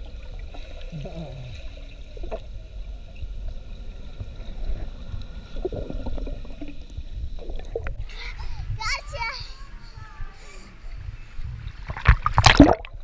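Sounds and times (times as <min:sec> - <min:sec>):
muffled underwater rumble: 0:00.0 - 0:13.0
child's high-pitched voice: 0:08.0 - 0:10.8
water splashing: 0:11.0 - 0:13.0.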